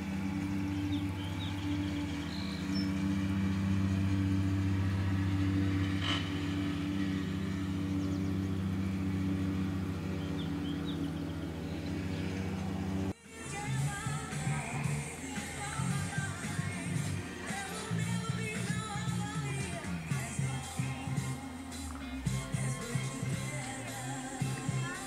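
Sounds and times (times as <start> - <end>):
low mechanical hum: 0.0 - 25.0.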